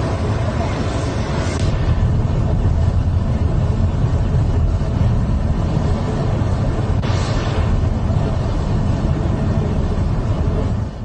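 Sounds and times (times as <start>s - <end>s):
jet engines roaring: 0.0s - 11.0s.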